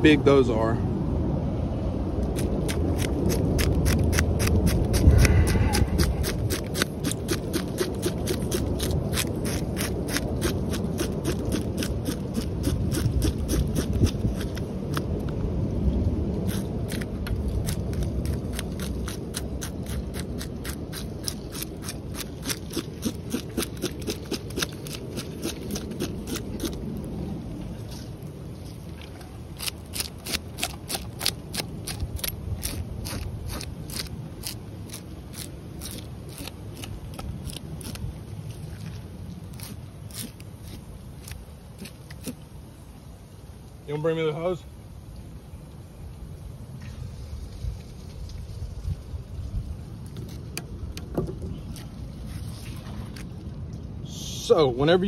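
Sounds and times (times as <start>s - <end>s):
knife scraping fish scales: 2.4s - 15.1s, 16.4s - 26.8s, 29.6s - 38.0s, 39.5s - 42.4s.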